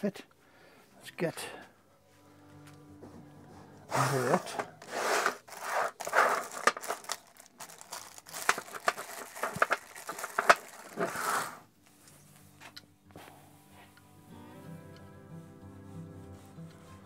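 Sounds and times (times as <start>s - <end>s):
crinkly rustling: 3.9s - 12.6s
small metal parts clicking: 5.8s - 11.1s.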